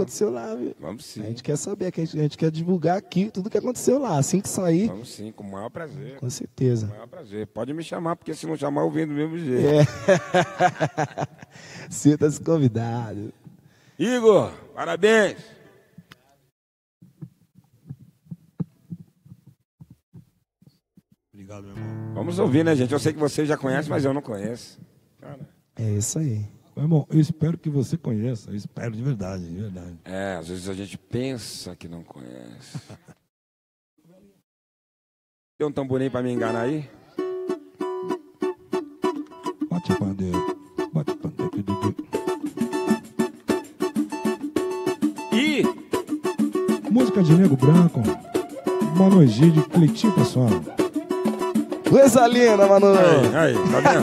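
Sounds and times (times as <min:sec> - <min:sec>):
soft low thumps: 0:17.0 - 0:20.3
acoustic guitar strumming: 0:21.7 - 0:23.3, 0:36.4 - 0:54.0
sharp tamborim strokes: 0:42.0 - 0:54.0.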